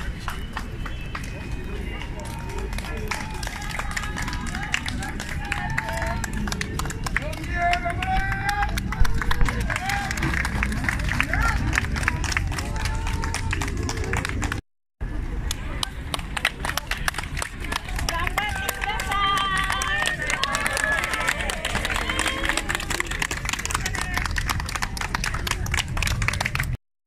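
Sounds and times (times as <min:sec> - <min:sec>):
hand claps: 0:00.0 - 0:14.6, 0:15.5 - 0:26.8
crowd voices and calls: 0:00.0 - 0:26.8.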